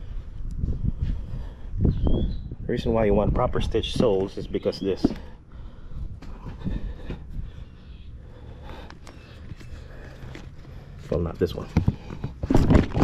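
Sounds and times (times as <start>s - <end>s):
steady low rumble: 0.0s - 4.4s
boot handling knocks and rubs: 11.3s - 13.0s.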